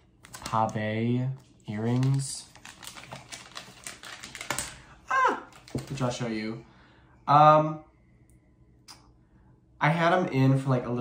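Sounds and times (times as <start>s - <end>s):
packaging clicks and crinkles: 0.2s - 0.8s, 1.4s - 6.2s.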